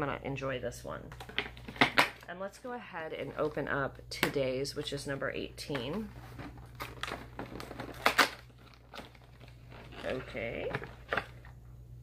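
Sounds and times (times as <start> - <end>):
cardboard tearing: 6.1 - 11.4.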